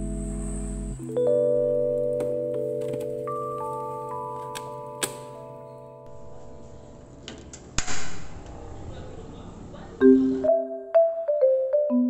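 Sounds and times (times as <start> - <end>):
mallet keyboard music: 0.0 - 7.2, 10.0 - 12.0.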